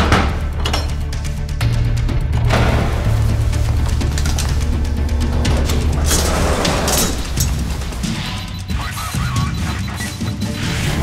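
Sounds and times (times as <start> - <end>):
deep bass drone: 0.0 - 8.0.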